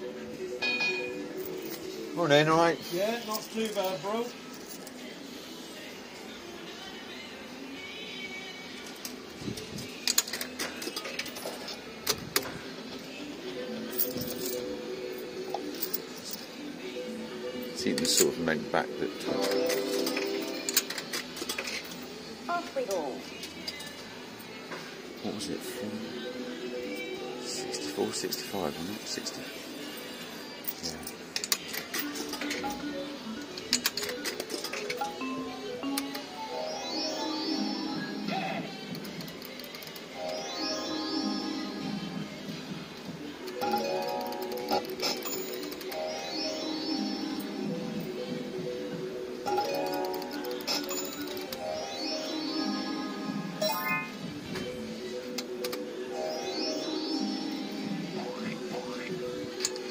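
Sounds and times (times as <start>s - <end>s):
electronic slot machine tune: 17.7s - 21.4s, 34.9s - 38.5s, 40.2s - 42.3s, 43.6s - 54.8s, 55.8s - 59.9s
electronic notes: 19.3s - 21.0s, 35.2s - 38.5s, 51.5s - 54.4s, 56.1s - 59.3s.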